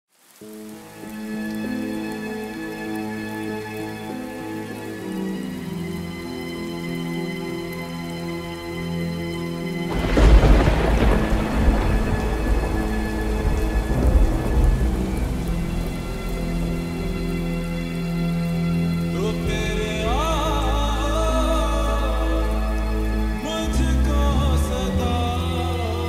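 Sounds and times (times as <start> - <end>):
rain falling: 0.1 - 26.0
thunderclap rumbling: 9.9 - 18.1.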